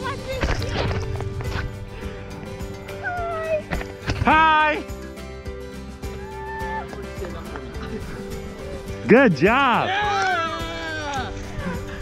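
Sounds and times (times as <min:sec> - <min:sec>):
background music: 0:00.0 - 0:12.0.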